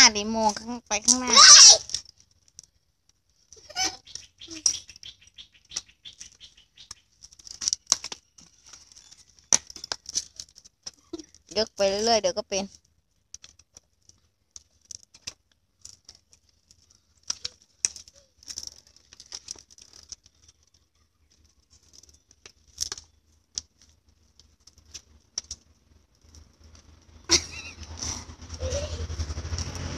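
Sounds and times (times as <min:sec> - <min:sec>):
child's bicycle rattling on concrete: 0:00.0 - 0:02.8, 0:03.4 - 0:29.9.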